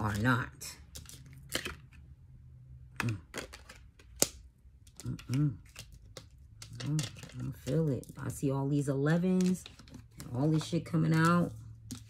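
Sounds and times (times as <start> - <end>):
cards clicking and slapping: 0.9 - 2.0, 3.0 - 7.8.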